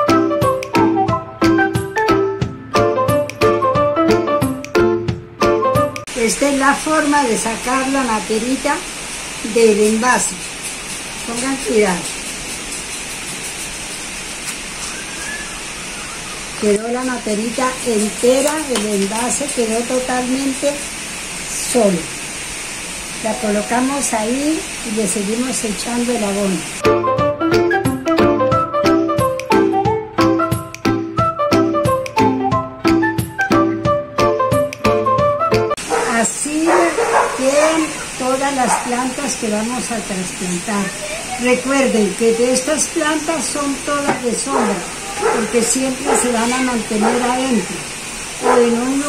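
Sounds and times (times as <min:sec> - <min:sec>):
steady background hiss: 0:05.2 - 0:27.0, 0:35.7 - 0:49.0
woman speaking: 0:06.1 - 0:10.4, 0:11.2 - 0:12.2, 0:16.6 - 0:20.9, 0:21.5 - 0:22.2, 0:23.2 - 0:26.8, 0:35.9 - 0:49.0.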